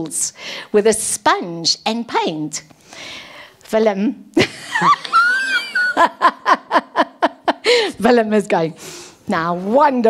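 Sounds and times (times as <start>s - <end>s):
woman laughing: 4.4s - 8.0s.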